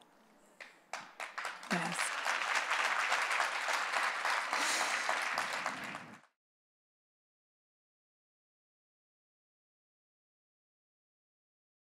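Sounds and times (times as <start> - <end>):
audience applauding: 0.6 - 6.4.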